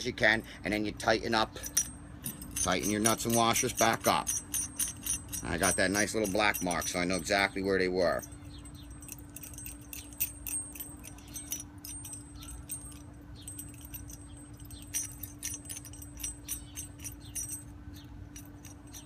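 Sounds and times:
nuts clicking onto threaded rod: 1.6s - 7.4s.

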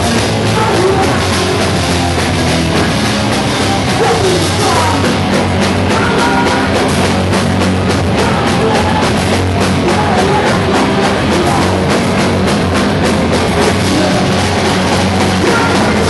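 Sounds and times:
rock band playing live: 0.0s - 16.0s.

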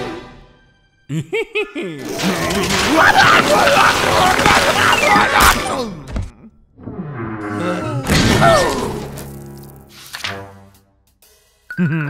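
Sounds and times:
background music: 0.0s - 6.1s, 7.4s - 12.0s
metal pipes and machinery crashing: 2.1s - 5.7s.

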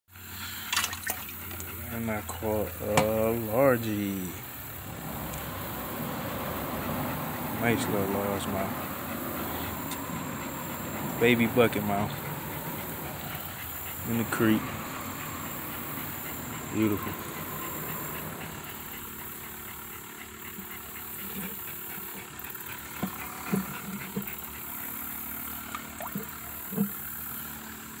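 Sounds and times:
aerator pump humming: 0.2s - 28.0s
water sloshing in a bucket: 0.6s - 19.2s, 25.4s - 27.2s.

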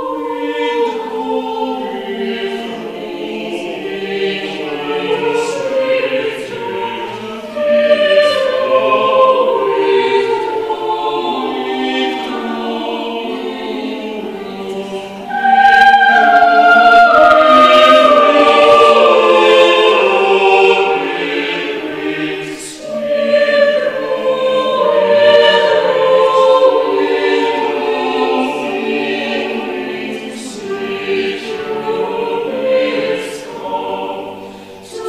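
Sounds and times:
mixed choir singing: 0.0s - 35.0s.

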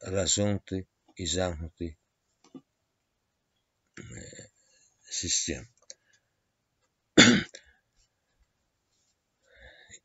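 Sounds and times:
person coughing: 7.2s - 7.6s.

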